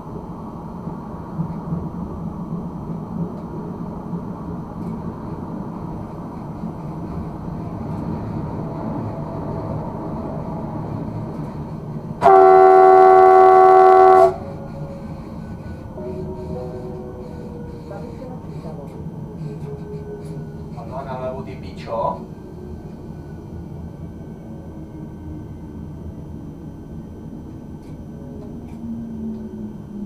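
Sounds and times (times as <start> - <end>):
train rail and traction noise: 0.0 - 30.0
train horn blast: 12.2 - 18.3.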